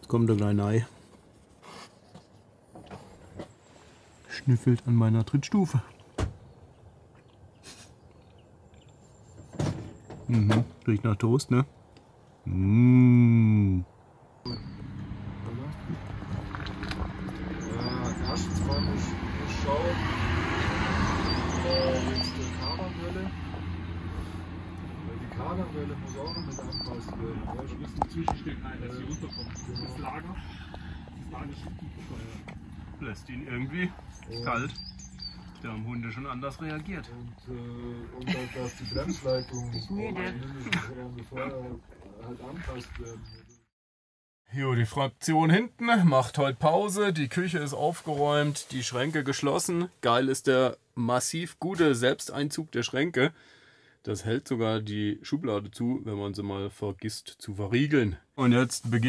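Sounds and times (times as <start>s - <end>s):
people talking: 4.3s - 5.9s, 10.3s - 11.7s, 12.5s - 13.9s, 15.4s - 16.0s, 17.5s - 20.1s, 21.6s - 23.4s, 25.1s - 30.6s, 31.2s - 34.8s, 35.6s - 43.4s, 44.6s - 53.3s, 54.1s - 59.0s
bird chirping: 6.1s - 12.8s, 13.6s - 19.7s, 20.6s - 24.3s, 25.4s - 43.7s
person humming: 12.5s - 13.8s.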